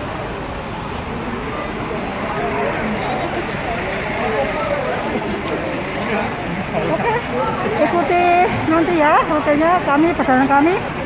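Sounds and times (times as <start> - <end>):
bus engines running: 0.0 - 11.0
crowd chatter: 0.0 - 11.0.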